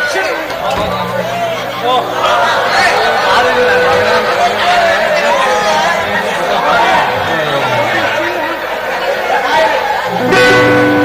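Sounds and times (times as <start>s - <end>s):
dialogue over public-address system: 0.0s - 11.0s.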